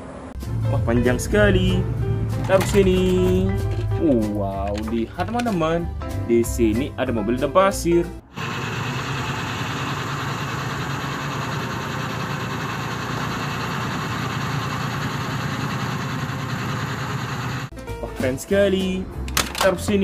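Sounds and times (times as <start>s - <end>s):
truck engine running: 8.3s - 17.7s.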